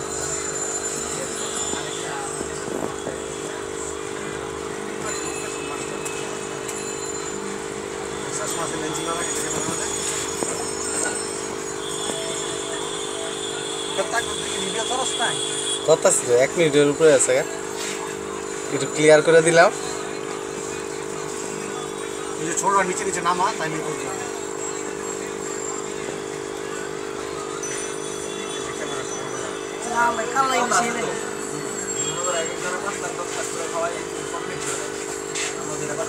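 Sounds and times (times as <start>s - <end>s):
steady mechanical hum: 0.0s - 36.0s.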